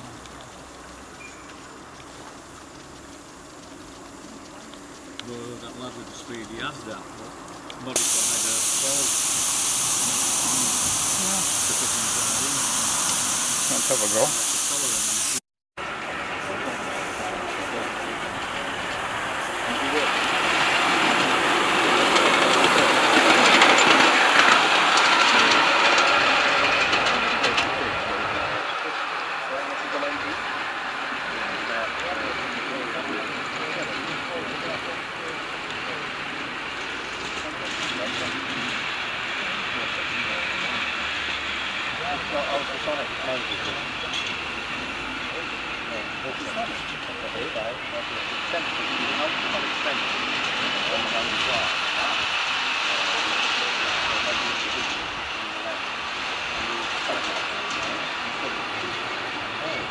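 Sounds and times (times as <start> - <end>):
steam locomotive hissing: 0.0 - 59.9.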